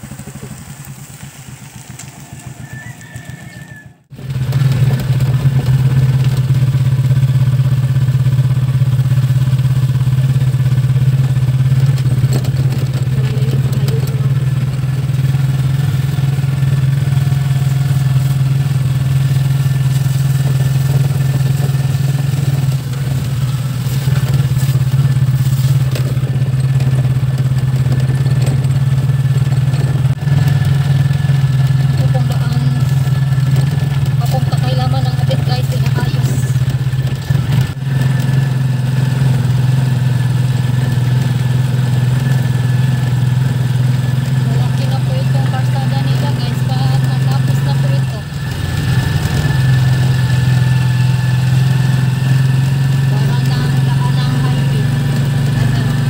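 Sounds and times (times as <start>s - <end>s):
motorcycle engine droning: 0.0s - 56.0s.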